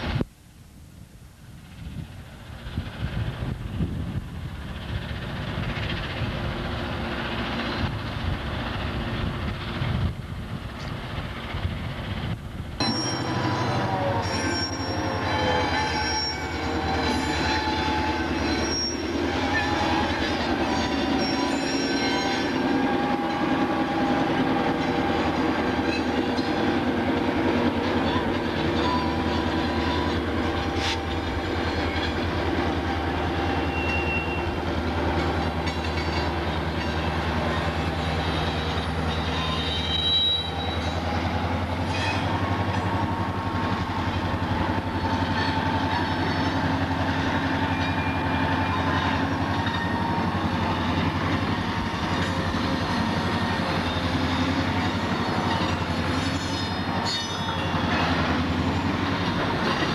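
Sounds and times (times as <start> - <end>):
diesel locomotive engine running: 1.7 - 59.9
high wheel squeals: 12.8 - 26.6, 28.0 - 34.7, 35.6 - 43.0, 44.6 - 59.9.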